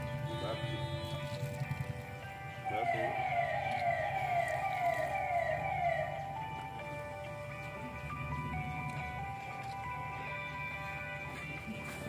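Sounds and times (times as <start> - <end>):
electronic siren wailing: 0.0 - 7.1
background music: 0.0 - 12.0.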